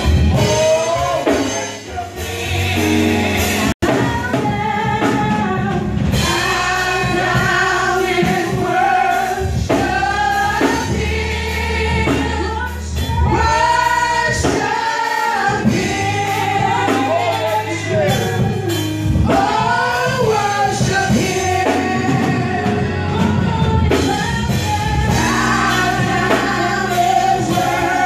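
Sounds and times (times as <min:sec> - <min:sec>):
women singing gospel song: 0:00.0 - 0:28.0.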